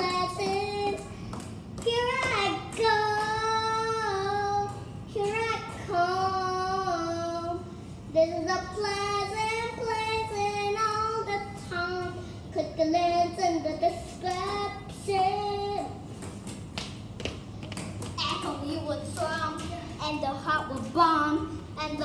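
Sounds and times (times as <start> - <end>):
girl singing: 0.0 - 16.1, 18.1 - 22.0
girl talking: 18.1 - 22.0.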